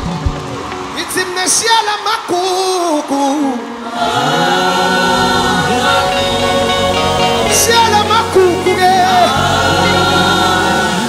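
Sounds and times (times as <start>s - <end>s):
gospel choir singing: 0.9s - 11.0s.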